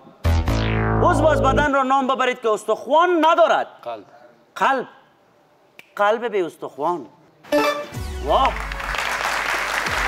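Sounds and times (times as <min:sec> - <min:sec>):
finger snap: 0:05.7 - 0:06.0.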